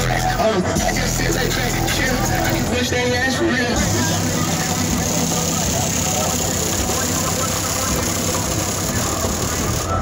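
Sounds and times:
indistinct voices: 0.0 - 10.0
car engine idling: 3.8 - 9.8.

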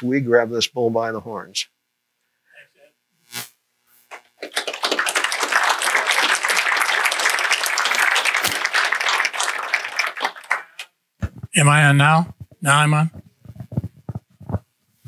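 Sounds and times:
audience applauding: 4.1 - 10.9.

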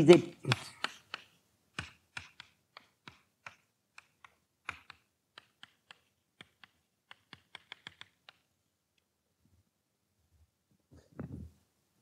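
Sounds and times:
chalk tapping on chalkboard: 0.0 - 8.5.

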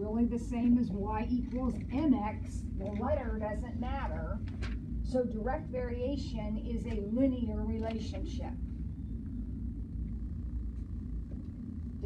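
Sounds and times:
low room tone rumble: 0.0 - 12.0.

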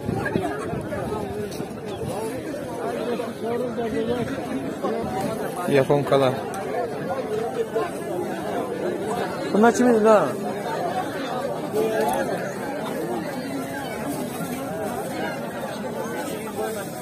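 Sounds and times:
people talking at once: 0.0 - 17.0.

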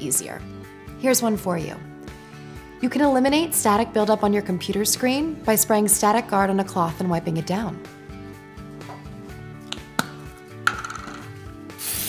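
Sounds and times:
quiet background music: 0.0 - 12.0
aerosol can clicks: 9.6 - 12.0
aerosol spray hiss: 11.7 - 12.0.

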